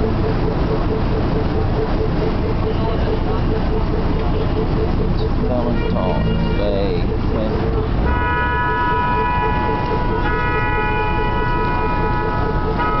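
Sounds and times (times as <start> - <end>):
road traffic rumble: 0.0 - 13.0
vehicle horn blasts: 5.6 - 6.8, 8.1 - 13.0.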